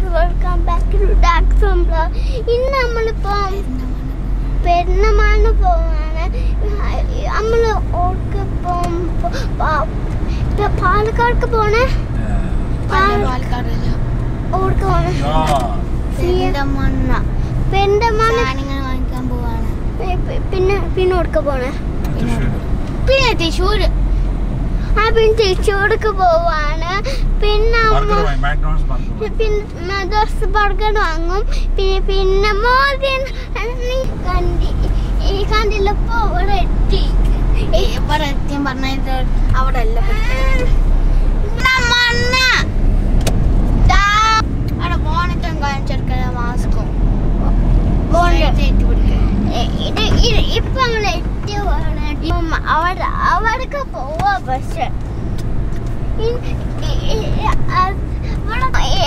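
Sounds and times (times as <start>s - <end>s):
child talking: 0.0s - 24.0s, 24.8s - 42.7s, 43.8s - 55.0s, 56.2s - 59.0s
car cabin rumble: 0.0s - 59.0s
person's voice: 11.8s - 14.0s, 14.6s - 18.9s, 20.1s - 22.6s, 27.4s - 29.4s.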